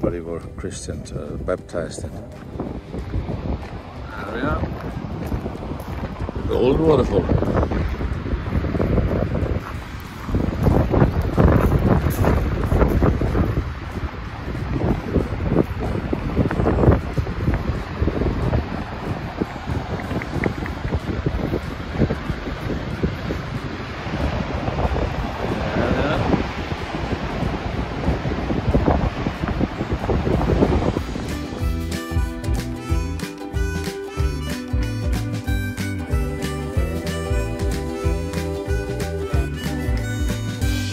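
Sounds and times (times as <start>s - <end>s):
wind buffeting microphone: 0.0s - 40.9s
waterfall rushing: 7.3s - 40.9s.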